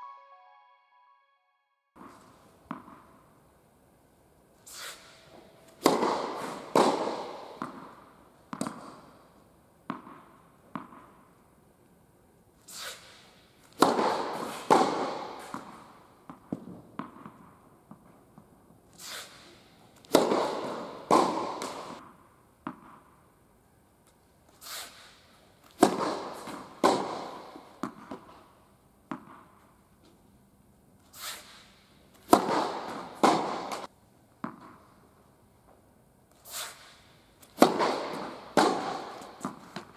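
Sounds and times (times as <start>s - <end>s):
echoing tennis ball hits: 2.0s - 3.2s, 5.8s - 9.1s, 9.8s - 11.2s, 13.8s - 18.1s, 20.1s - 23.1s, 25.8s - 28.4s, 29.1s - 29.6s, 32.2s - 34.9s, 37.5s - 39.9s
tennis ball bouncing on court: 2.0s - 3.2s, 5.8s - 9.2s, 9.8s - 11.4s, 13.8s - 18.5s, 20.0s - 23.2s, 25.8s - 28.4s, 29.0s - 29.7s, 32.2s - 34.9s, 37.5s - 39.9s.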